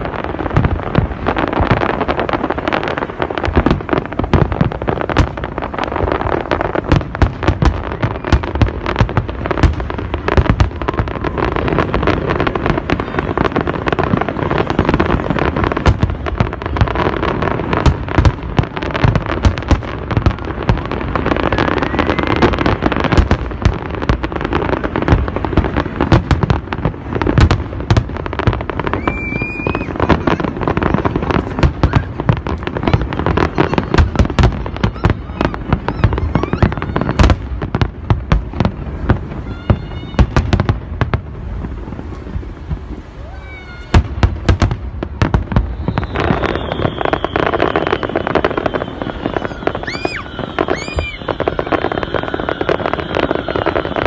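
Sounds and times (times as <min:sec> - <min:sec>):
fireworks bursts and crackling bangs: 0:00.0 - 0:54.0
high firework whistle: 0:01.3 - 0:40.8, 0:45.2 - 0:54.0.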